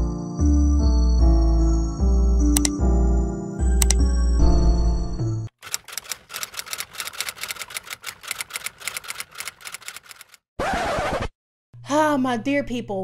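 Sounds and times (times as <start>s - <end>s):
typewriter keys clacking: 5.6s - 10.4s.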